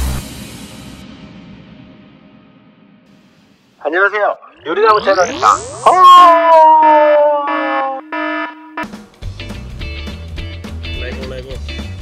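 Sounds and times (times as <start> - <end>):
electronic buzzer tone: 4.6 - 9.0
short electronic beeps: 6.8 - 9.0.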